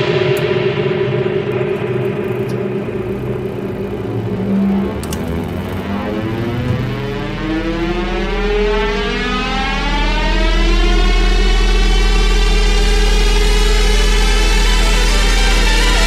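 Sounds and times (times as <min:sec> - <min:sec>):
deep bass: 0:00.0 - 0:16.0
synth riser climbing in pitch: 0:00.0 - 0:16.0.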